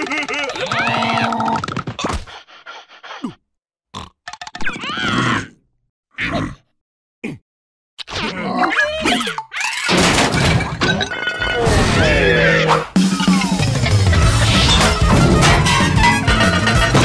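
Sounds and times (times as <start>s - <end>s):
cartoon grunts and squeals: 4.6s - 7.4s, 8.0s - 10.0s, 11.6s - 16.4s
cartoon sound effects: 11.5s - 17.0s
cartoon yelling: 11.8s - 13.7s.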